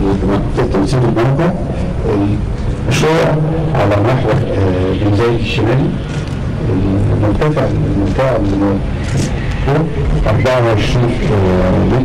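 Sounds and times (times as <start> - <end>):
low rumble: 0.0 - 12.0
man speaking over public address: 0.0 - 12.0.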